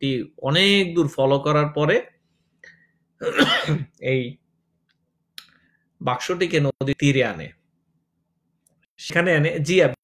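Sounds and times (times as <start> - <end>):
man clearing his throat: 3.2 - 4.0.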